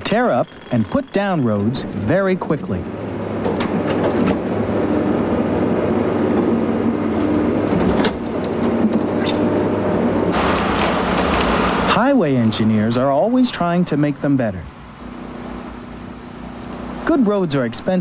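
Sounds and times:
construction machine engine humming: 0.0s - 18.0s
broad rushing noise: 1.3s - 18.0s.

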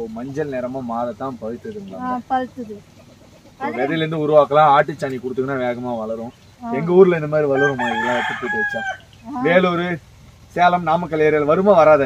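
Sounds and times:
person talking: 1.6s - 2.8s, 3.6s - 4.4s, 6.6s - 7.2s, 9.3s - 9.8s
rooster crowing: 6.7s - 9.8s.

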